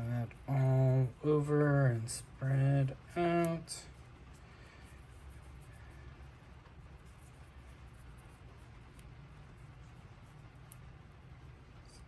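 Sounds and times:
low steady hum: 0.0 - 12.0
paintbrush strokes: 0.0 - 12.0.

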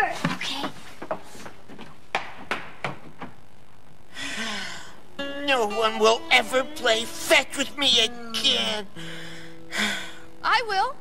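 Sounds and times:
footsteps on wooden floor: 0.1 - 3.4.

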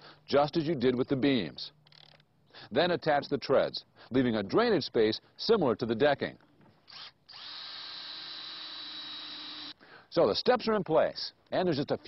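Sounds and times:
cordless drill driving screw into wood: 6.8 - 9.8.

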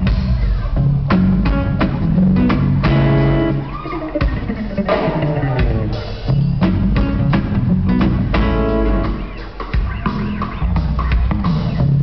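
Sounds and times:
live band playing: 0.0 - 12.0.

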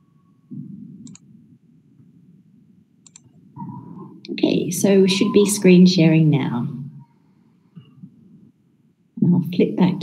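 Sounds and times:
computer mouse clicks: 1.0 - 1.3, 3.0 - 3.4.

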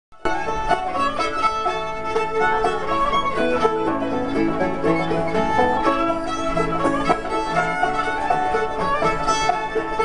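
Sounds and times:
banjo picked rhythm: 0.2 - 10.0
fiddle bowing melody: 0.2 - 10.0.

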